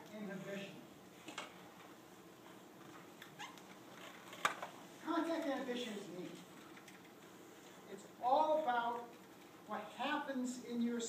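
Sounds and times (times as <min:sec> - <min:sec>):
marker squeaking on whiteboard: 0:03.3 - 0:03.7.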